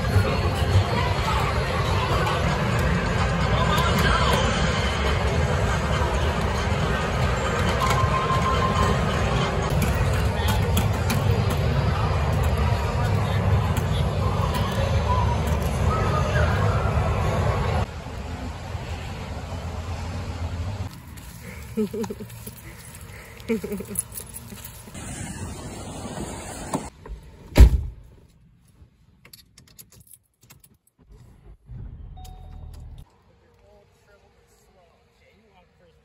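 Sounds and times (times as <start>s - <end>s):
crowd babble: 0.0s - 20.1s
electronic game machines: 1.5s - 14.2s.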